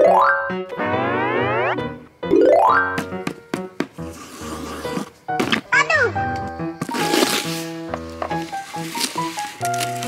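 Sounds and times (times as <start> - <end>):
children's background music: 0.0 - 4.1, 5.2 - 10.0
cartoon pitch sweeps: 0.8 - 2.8.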